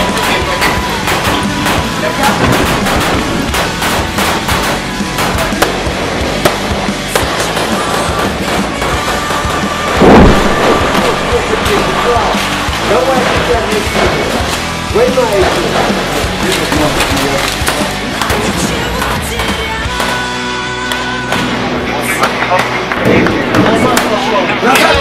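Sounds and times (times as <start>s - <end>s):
background music: 0.0s - 25.0s
rifle shots: 0.2s - 14.6s
loud boom: 1.1s - 5.5s, 9.9s - 14.4s.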